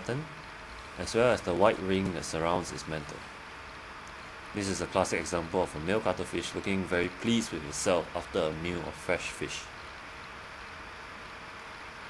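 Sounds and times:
faint hum: 0:00.0 - 0:12.0
steady background hiss: 0:00.0 - 0:12.0.

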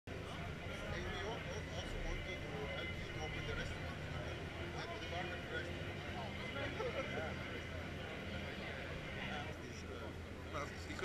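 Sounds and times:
din of many voices: 0:00.1 - 0:11.0.

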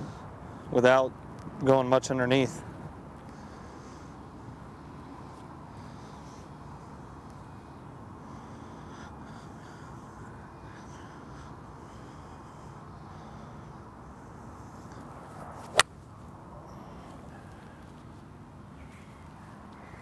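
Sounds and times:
faint outdoor hiss: 0:00.0 - 0:20.0
golf club striking ball: 0:15.6 - 0:15.9.

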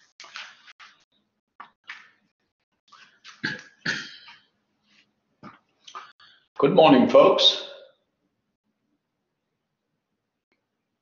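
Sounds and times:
man coughing: 0:03.4 - 0:04.4.

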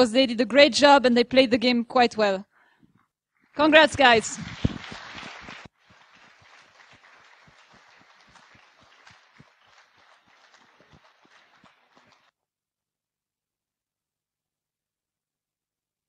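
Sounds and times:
audience applause: 0:03.6 - 0:12.3.

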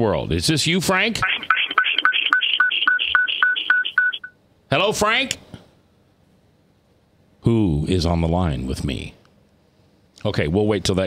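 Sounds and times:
rapid electronic beeps over phone line: 0:01.2 - 0:04.4.

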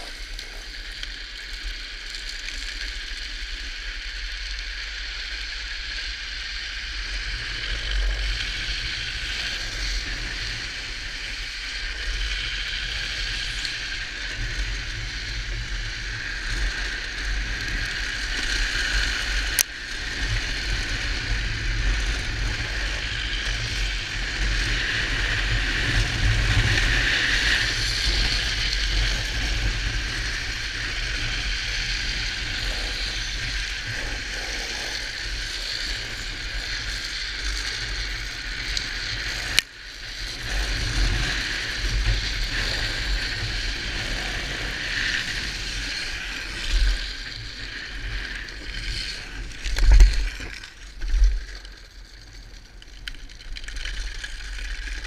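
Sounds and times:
wheel and wind noise: 0:00.0 - 0:55.0.

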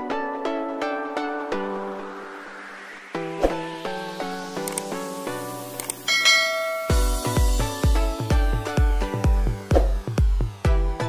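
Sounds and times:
bright bell chime: 0:06.1 - 0:07.6
electronic dance track with bass: 0:06.9 - 0:11.0.

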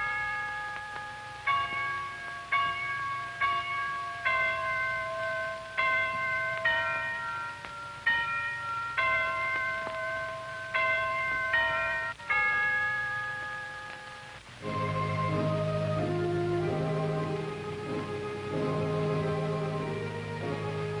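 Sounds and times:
bells chiming a slow tune: 0:00.0 - 0:21.0.

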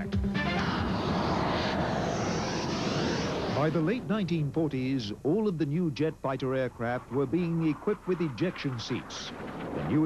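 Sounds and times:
music: 0:00.0 - 0:01.1
jet aircraft flying past: 0:00.2 - 0:10.0.

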